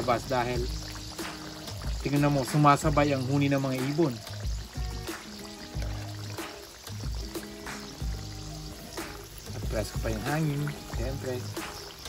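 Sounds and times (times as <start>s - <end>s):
deep-frying sizzle in oil: 0.0s - 12.0s
music with bass beat: 0.0s - 12.0s.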